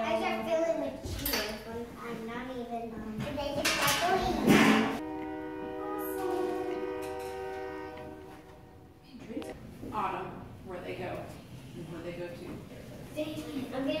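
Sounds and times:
held musical tone: 5.0 - 9.0
children chattering: 5.8 - 7.8.

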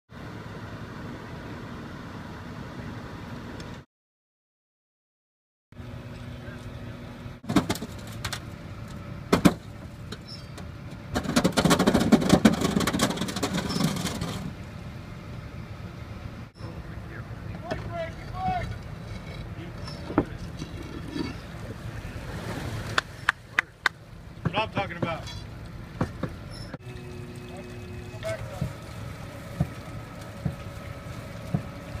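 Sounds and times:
truck engine idling: 5.8 - 22.3, 22.9 - 32.0
clattering and knocking: 11.1 - 14.5.

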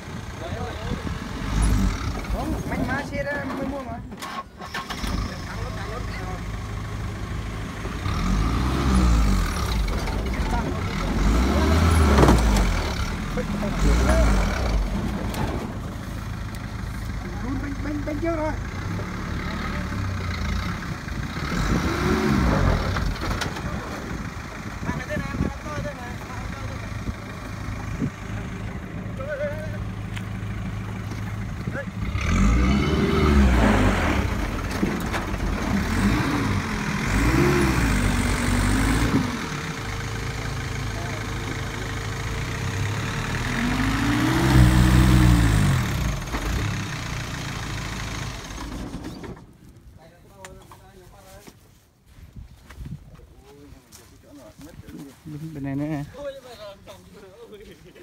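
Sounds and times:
truck engine revving: 0.0 - 49.6.

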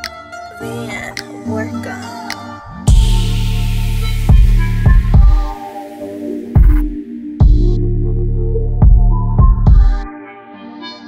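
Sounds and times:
sharp kick drum hits: 2.9 - 3.4, 4.3 - 5.6, 6.6 - 7.7, 8.8 - 10.1
heavy sustained bass: 2.9 - 5.6.

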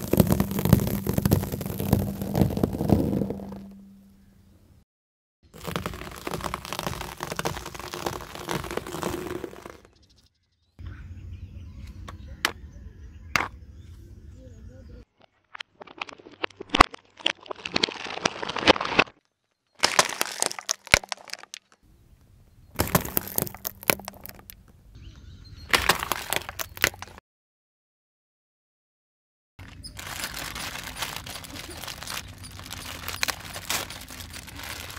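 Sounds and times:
eggs cracking and bursting: 0.0 - 3.7, 5.6 - 9.9, 15.6 - 21.8, 22.7 - 24.6, 25.7 - 27.2, 30.3 - 34.9
tyre crunching food on asphalt: 0.0 - 3.8, 5.5 - 10.1, 15.7 - 21.8, 22.7 - 24.7, 25.7 - 27.2, 29.6 - 34.9.

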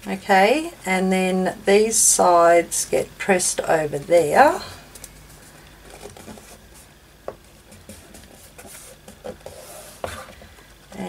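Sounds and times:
paper rustling: 5.0 - 10.6.

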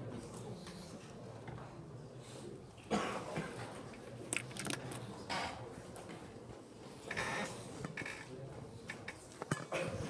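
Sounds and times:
person coughing: 2.9 - 3.5, 9.7 - 10.0.

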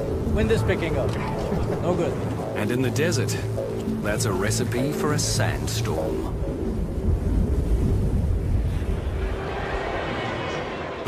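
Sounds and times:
wind buffeting microphone: 0.0 - 10.3.

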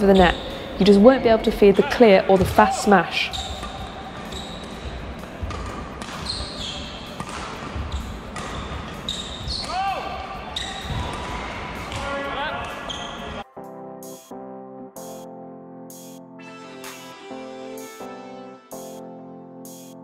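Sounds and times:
shoes squeaking on court floor: 0.0 - 0.6, 1.6 - 13.4
music: 0.0 - 20.0
rackets striking shuttlecocks: 1.8 - 9.8.

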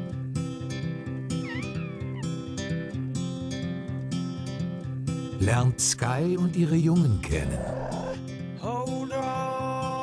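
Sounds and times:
bear cub crying: 7.3 - 8.2.

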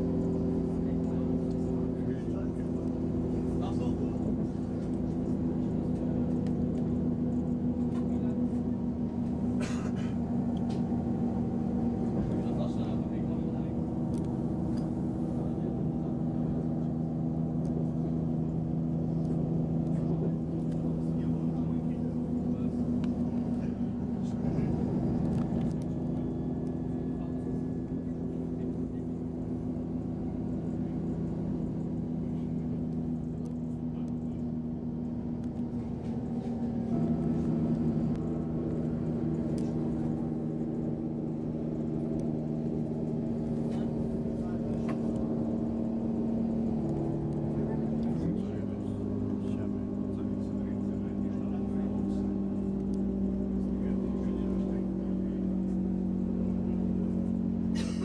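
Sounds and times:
low train rumble: 0.0 - 58.0
train drive hum: 0.0 - 58.0.

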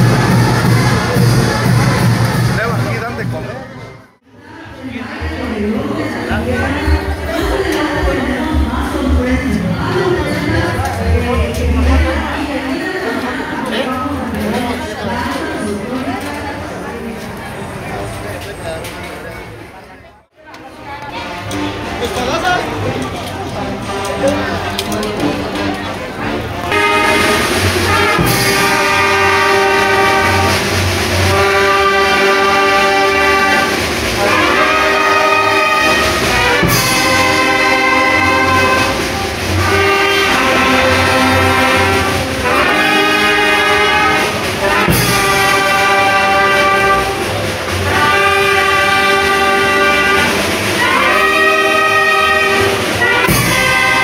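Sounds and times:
brass band playing: 0.0 - 16.2, 21.0 - 54.0
crowd chatter: 0.0 - 54.0.

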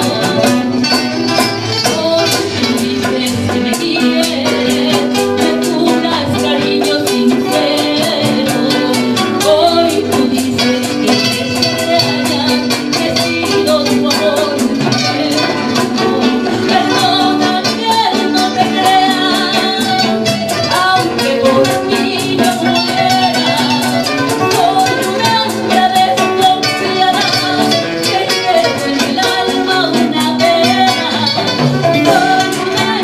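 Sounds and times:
busy percussion beat: 0.0 - 33.0
guitars: 0.0 - 33.0
woman singing into a microphone: 0.0 - 33.0.

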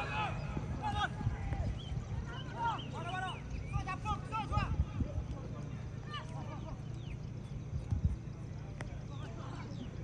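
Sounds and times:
distant players shouting: 0.0 - 4.9.

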